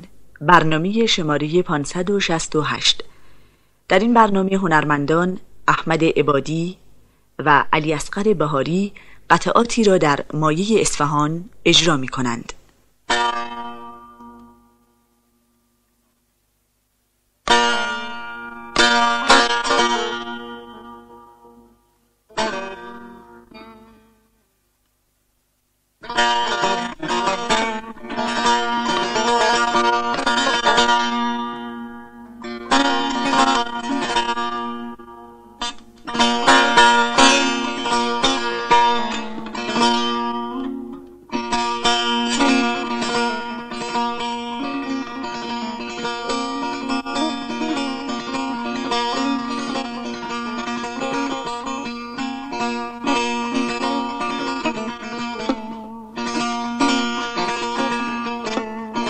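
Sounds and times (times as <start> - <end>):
plucked setar: 17.4 - 24.2, 26.0 - 59.0.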